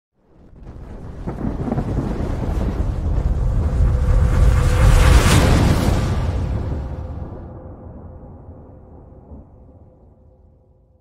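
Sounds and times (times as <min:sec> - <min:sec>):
deep rumbling boom: 0:00.4 - 0:10.7.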